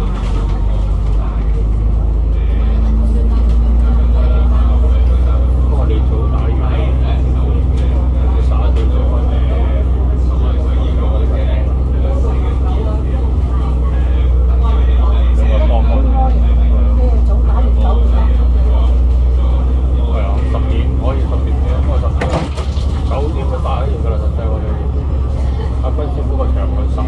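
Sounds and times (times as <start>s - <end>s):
bus engine droning: 0.0s - 27.0s.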